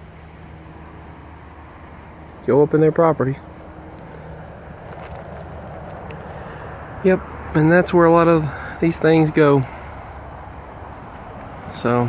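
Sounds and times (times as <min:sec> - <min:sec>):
outdoor background rumble: 0:00.0 - 0:12.0.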